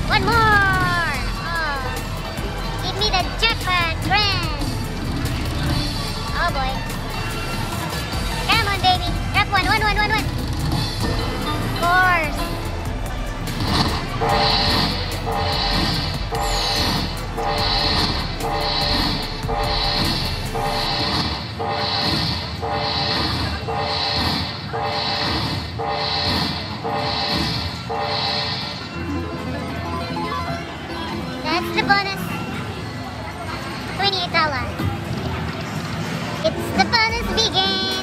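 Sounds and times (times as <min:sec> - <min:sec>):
slot machine chiming jingle: 0:00.1 - 0:33.8.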